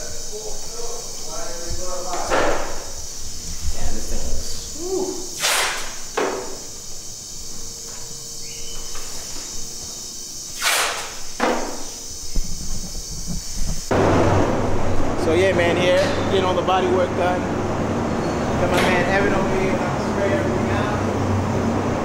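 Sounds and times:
compressed air blasts hissing: 0:00.0 - 0:07.5, 0:10.3 - 0:15.1
background noise with low hum: 0:00.0 - 0:22.0.

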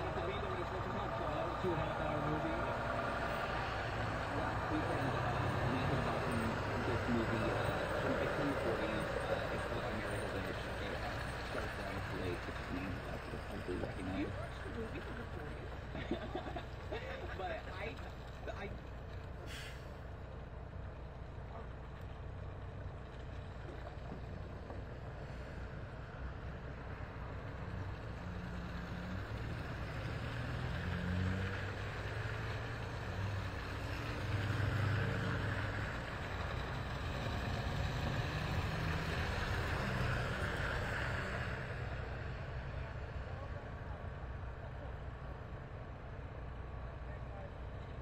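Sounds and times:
engine rumble: 0:00.0 - 0:48.0.

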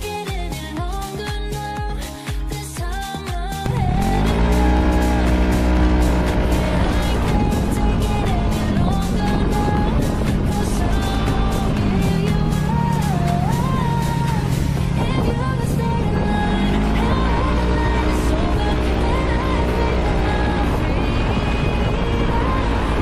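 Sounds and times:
music with steady beat: 0:00.0 - 0:23.0
scooter engine: 0:03.6 - 0:23.0.

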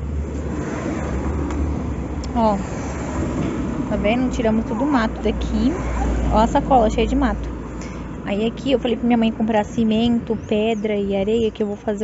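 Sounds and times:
car passing by: 0:00.0 - 0:08.3.

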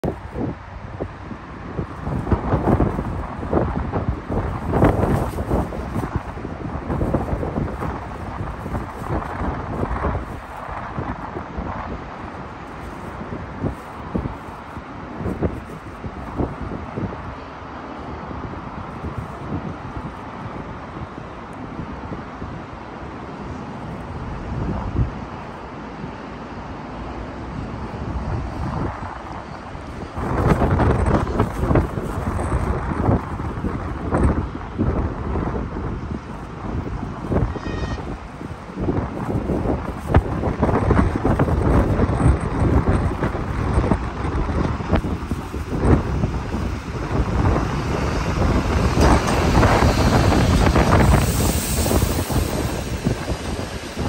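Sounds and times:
wind buffeting microphone: 0:00.0 - 0:26.4, 0:27.1 - 0:54.0.

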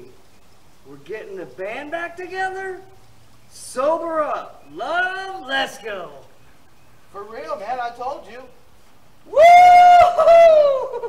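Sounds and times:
man yelling excitedly: 0:01.6 - 0:03.0, 0:03.6 - 0:06.2, 0:09.3 - 0:10.9.

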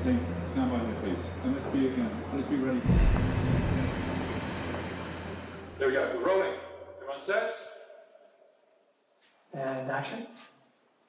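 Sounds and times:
car engine rumble: 0:00.0 - 0:05.9.

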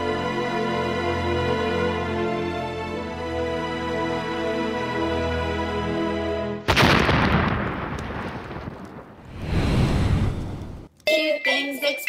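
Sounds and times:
explosion blast: 0:06.7 - 0:10.9
rumble: 0:08.2 - 0:10.9.

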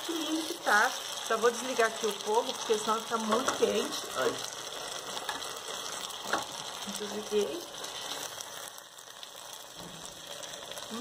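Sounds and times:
food sizzling in a pot: 0:00.0 - 0:11.0.

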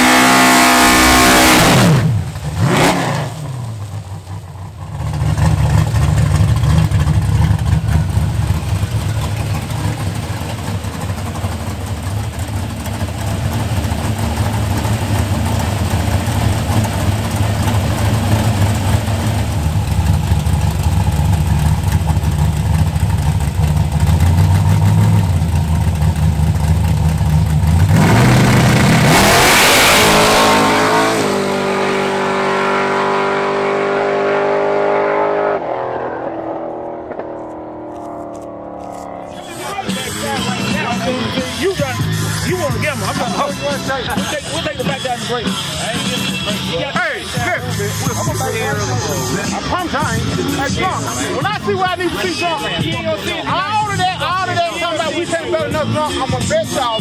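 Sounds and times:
car launching at full throttle: 0:00.0 - 0:04.1, 0:27.8 - 0:40.1
car engine idling and revving: 0:00.0 - 0:57.0.

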